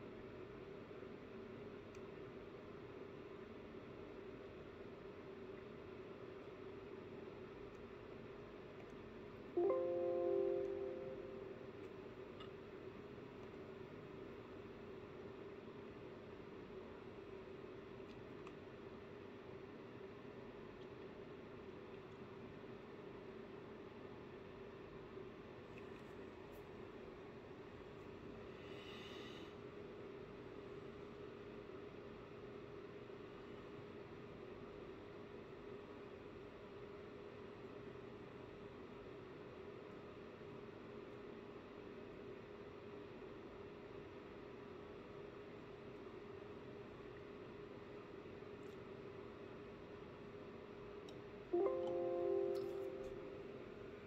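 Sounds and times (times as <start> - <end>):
low electrical hum: 0.0 - 54.0
multi-tone chime: 9.6 - 11.7, 51.6 - 53.7.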